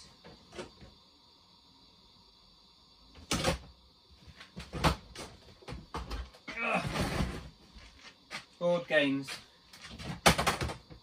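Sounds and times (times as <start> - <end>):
plastic crates knocking and clicking: 4.6 - 7.5, 9.8 - 11.0.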